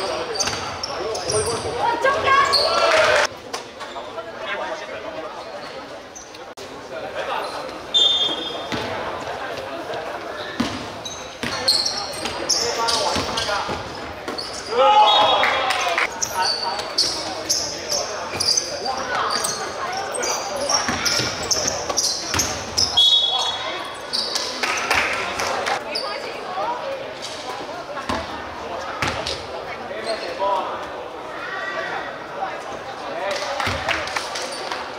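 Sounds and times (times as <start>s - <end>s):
players calling out: 0.0s - 3.3s
sneakers squeaking: 0.0s - 4.2s, 5.4s - 6.5s, 7.4s - 26.5s, 27.2s - 30.6s
basketball bouncing on court: 0.4s - 0.8s, 8.7s - 9.0s, 10.6s - 12.4s, 20.9s - 22.8s, 29.0s - 29.4s.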